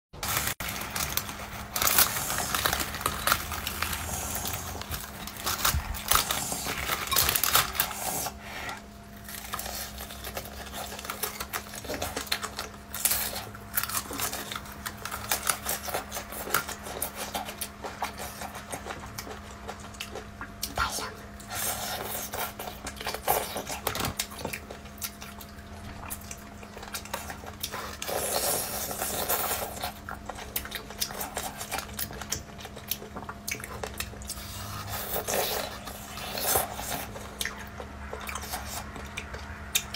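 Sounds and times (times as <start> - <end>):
fried coating crunching: 0.2 - 8.4
meat tearing and chewing: 0.2 - 39.9.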